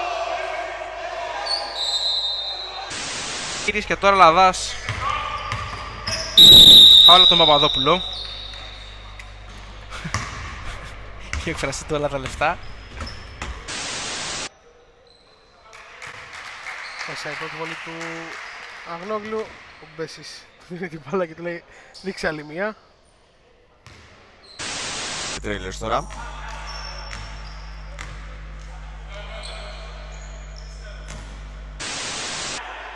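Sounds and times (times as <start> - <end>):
tv static hiss: 2.9 - 4.6, 13.7 - 14.5, 24.6 - 26.0, 31.4 - 32.6
basketball bouncing on court: 4.7 - 13.7, 23.8 - 24.2, 26.0 - 31.7.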